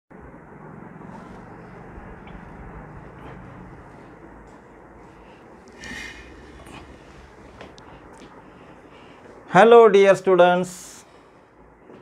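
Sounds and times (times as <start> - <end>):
low wavering hum: 0.1 - 9.5.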